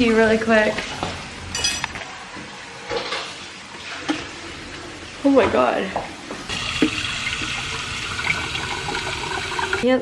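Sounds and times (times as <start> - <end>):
bright ringing clink: 1.6 - 1.9.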